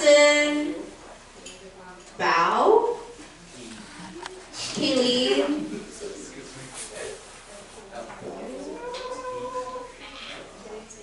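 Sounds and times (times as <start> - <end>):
young people's voices in a hall: 0.0 - 11.0
long high vocal call: 8.5 - 10.5.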